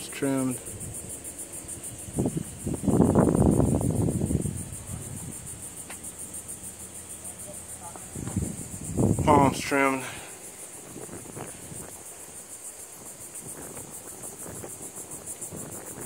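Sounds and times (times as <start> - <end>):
insects trilling: 0.0 - 16.0.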